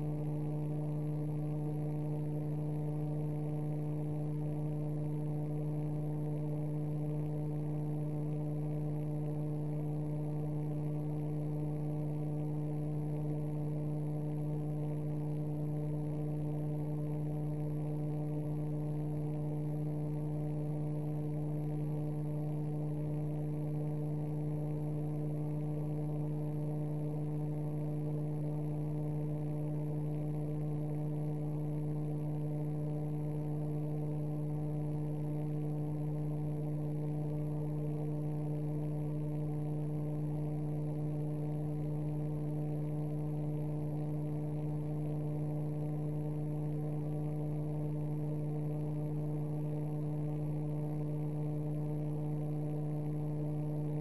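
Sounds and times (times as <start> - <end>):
electrical hum: 0.0 - 54.0.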